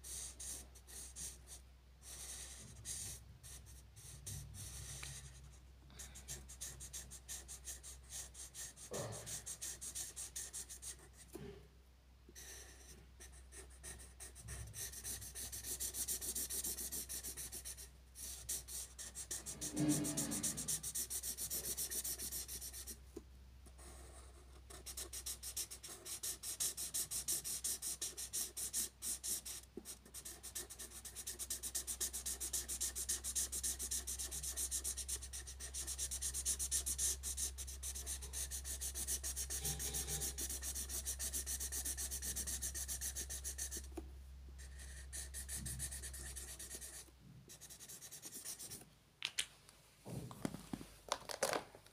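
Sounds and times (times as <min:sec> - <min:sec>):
marker scratching on paper: 0:00.0 - 0:05.5, 0:06.1 - 0:11.3, 0:12.4 - 0:23.0, 0:23.8 - 0:44.0, 0:44.6 - 0:48.8.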